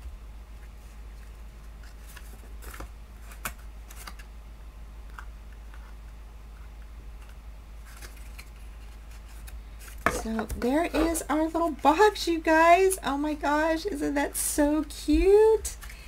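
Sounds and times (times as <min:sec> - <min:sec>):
cardstock rustling and crackling: 0:00.6 - 0:04.3, 0:07.2 - 0:12.1.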